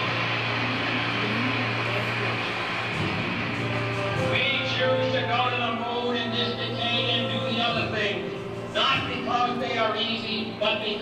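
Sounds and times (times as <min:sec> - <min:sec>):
crowd applauding over loudspeakers: 0:00.0 - 0:11.0.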